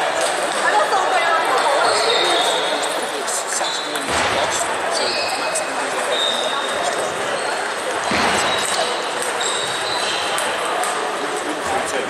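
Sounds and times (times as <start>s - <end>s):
hubbub of voices: 0.0s - 12.0s.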